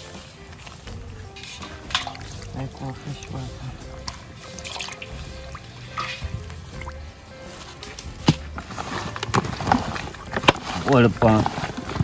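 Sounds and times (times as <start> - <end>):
quiet music: 0.0 - 12.0
water sloshing in a steel bowl: 0.0 - 12.0.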